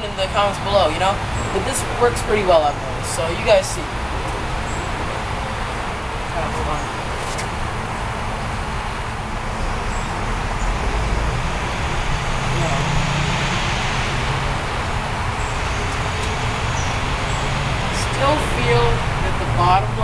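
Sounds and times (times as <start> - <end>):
low rumble: 2.8 - 20.0.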